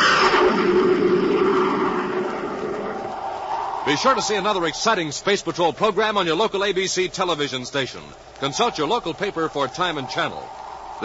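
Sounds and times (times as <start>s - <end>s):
jet aircraft flying past: 0.0s - 5.0s.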